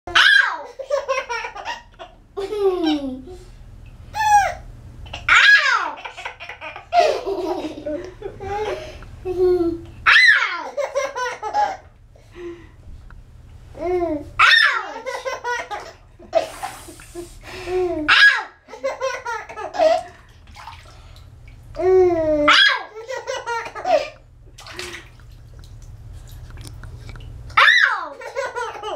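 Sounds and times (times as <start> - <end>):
baby laughing: 0.2 - 3.4, 4.2 - 11.9, 13.8 - 16.4, 21.8 - 24.2, 27.6 - 28.9
baby squealing: 10.1 - 10.7, 27.6 - 28.2.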